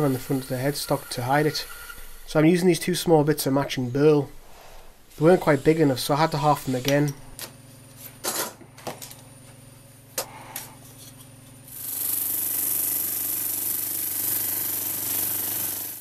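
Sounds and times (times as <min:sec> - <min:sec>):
drum sander hissing and humming: 0:00.0 - 0:08.2.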